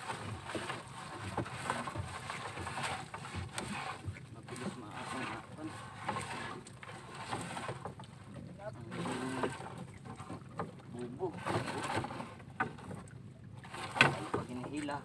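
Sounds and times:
knocks and rustles of net: 13.7s - 14.6s.

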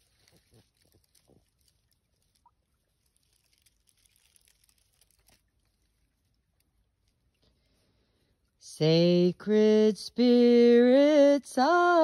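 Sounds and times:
soft rustles: 0.0s - 8.6s.

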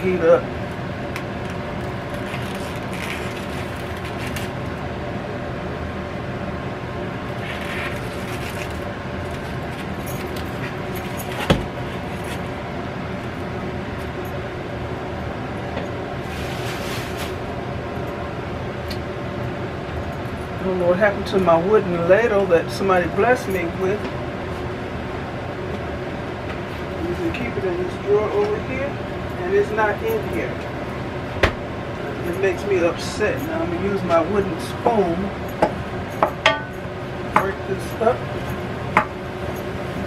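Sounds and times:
mechanical hum: 0.0s - 40.0s
plastic wrap crinkling: 2.0s - 4.6s, 7.4s - 10.4s.

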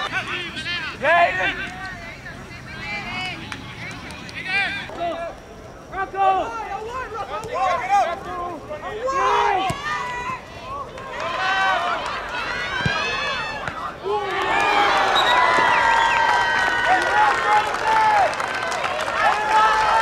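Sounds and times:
players shouting: 0.0s - 20.0s
crowd cheering and screaming: 9.0s - 20.0s.

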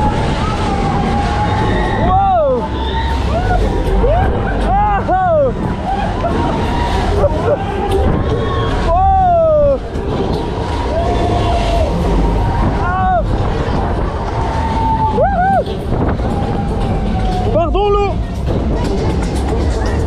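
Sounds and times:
background music: 0.0s - 20.0s
wind and rain on microphone: 9.4s - 17.2s.

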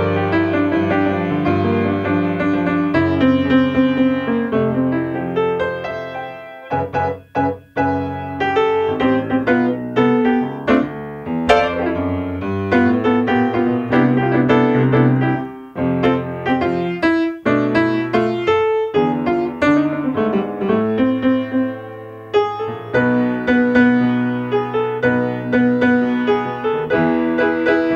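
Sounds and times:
solo grand piano: 0.0s - 27.9s.

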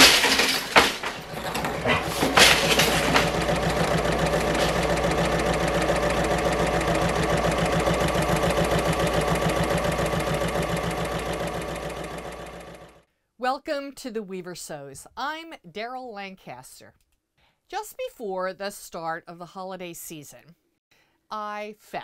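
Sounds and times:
sewing machine stitching: 0.0s - 13.0s.

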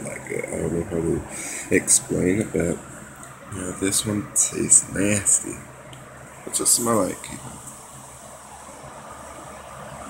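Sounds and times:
electric fan whooshing: 0.0s - 10.0s.

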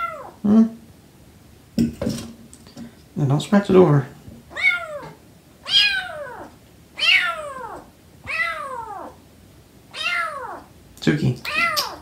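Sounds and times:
kitten meowing: 0.0s - 0.4s, 4.5s - 9.2s, 9.9s - 10.7s, 11.4s - 12.0s.

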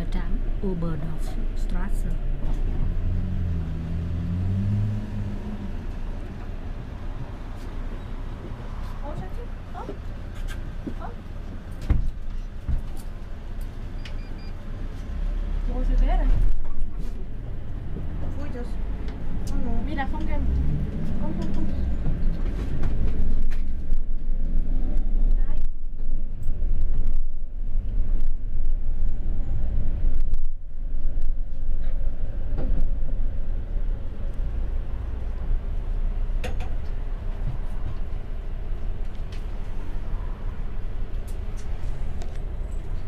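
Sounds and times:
bus engine and road rumble: 0.0s - 43.0s.

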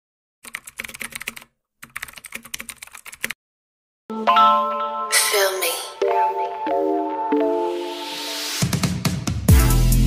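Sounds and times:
keyboard typing clicks: 0.4s - 3.4s.

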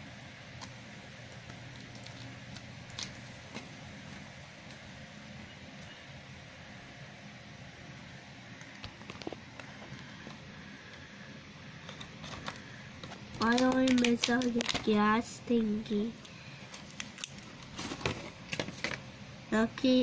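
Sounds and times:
plastic toy parts clicking: 11.9s - 14.9s.

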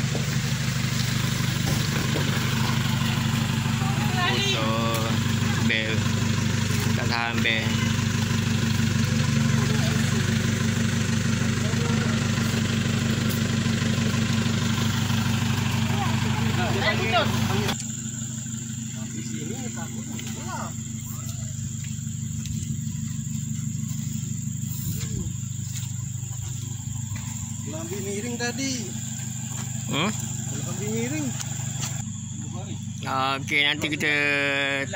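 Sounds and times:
engine idling: 0.0s - 34.9s
vehicle engine running: 0.0s - 34.9s
high insect buzz: 0.3s - 32.4s.

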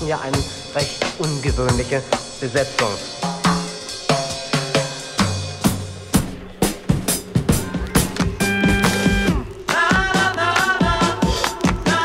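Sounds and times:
drum kit funk breakbeat: 0.0s - 12.0s
bass line: 3.2s - 11.2s.

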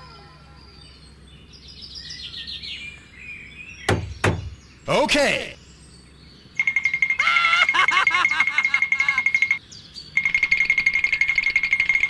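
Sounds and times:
rapid electronic beeping: 10.2s - 12.0s.

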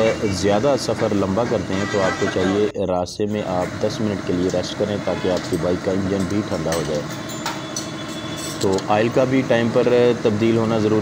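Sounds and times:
man speaking: 0.0s - 7.1s
mechanical hum: 0.0s - 11.0s.

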